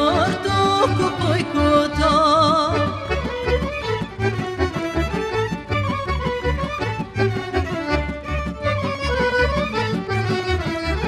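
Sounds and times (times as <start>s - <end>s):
live folk band music: 0.0s - 11.0s.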